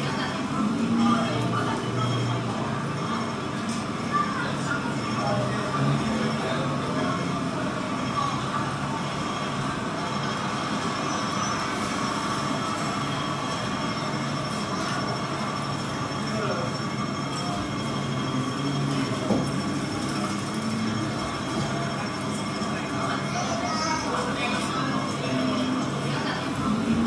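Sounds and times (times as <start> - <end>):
murmur of voices: 0.0 - 27.0.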